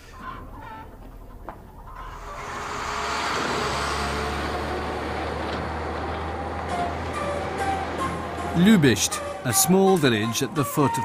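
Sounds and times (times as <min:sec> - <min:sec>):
truck engine humming: 0:00.0 - 0:11.0.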